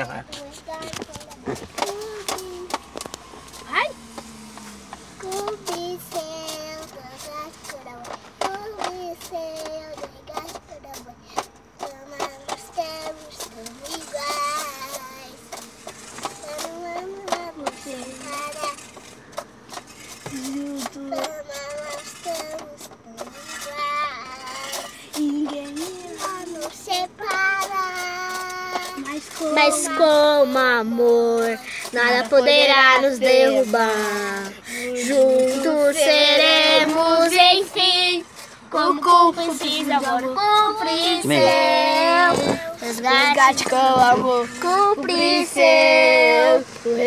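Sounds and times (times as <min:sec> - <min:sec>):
girl singing held notes: 0:20.3 - 0:47.0.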